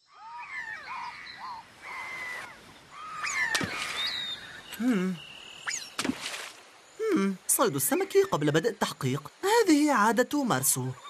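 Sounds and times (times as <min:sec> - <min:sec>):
long whistled bird call: 0:00.0 - 0:06.0
short arching bird calls: 0:00.1 - 0:06.0.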